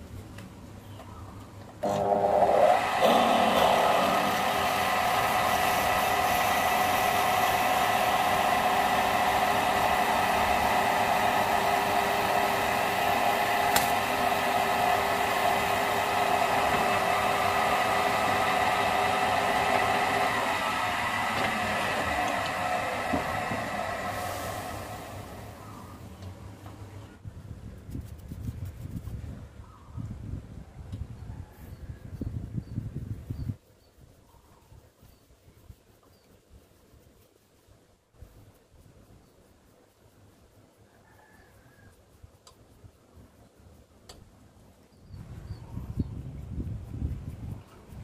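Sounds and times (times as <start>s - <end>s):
drill bit boring into wood: 1.8s - 24.2s
wood lathe motor whine: 1.8s - 26.1s.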